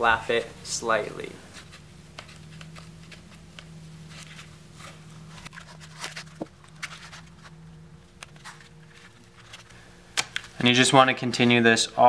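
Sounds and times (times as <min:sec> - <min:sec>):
low hum: 0:00.0 - 0:10.5
tape crackling and rubbing: 0:01.5 - 0:10.6.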